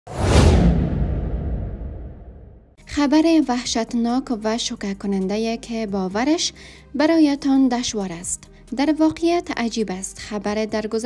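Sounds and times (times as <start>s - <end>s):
whoosh with low rumble: 0.1s - 2.8s.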